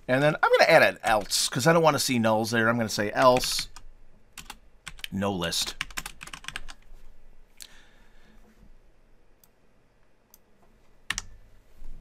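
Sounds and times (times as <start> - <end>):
keyboard typing clicks: 11.1 - 11.3.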